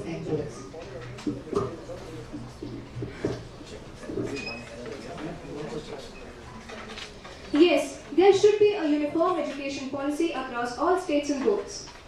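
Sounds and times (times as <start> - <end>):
low murmuring: 0.0 - 8.2.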